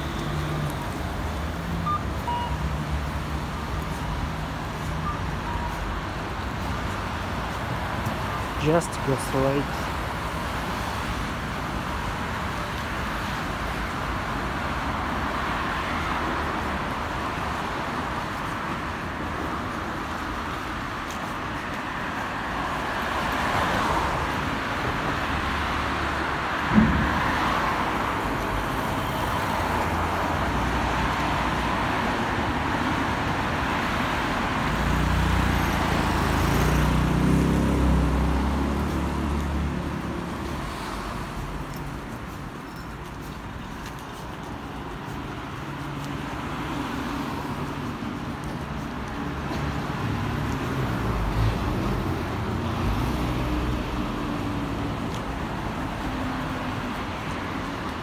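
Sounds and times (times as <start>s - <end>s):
road traffic passing: 0.0s - 58.0s
sharp knock: 26.7s - 27.6s.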